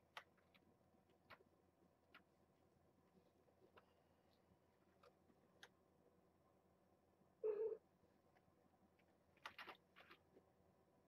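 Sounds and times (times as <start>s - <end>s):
kitten mewing: 7.4s - 7.8s.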